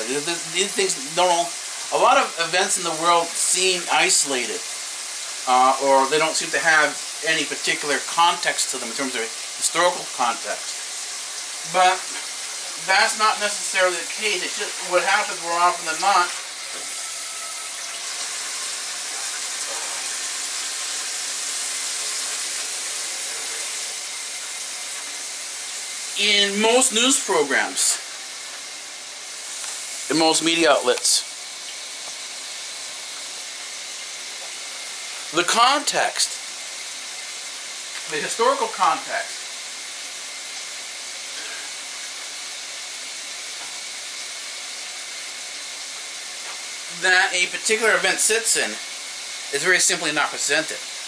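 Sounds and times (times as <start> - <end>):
room background hiss: 0.0 - 51.0
tap water running into sink: 5.3 - 27.9.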